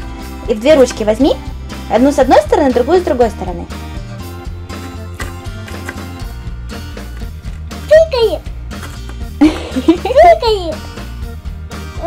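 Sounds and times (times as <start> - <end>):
background music with beat: 0.0 - 12.0
child's voice: 7.8 - 8.5, 10.2 - 10.8.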